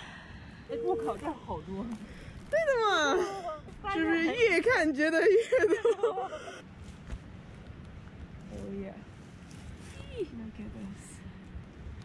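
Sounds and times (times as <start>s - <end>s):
rustling of dry pine needles: 6.8s - 12.0s.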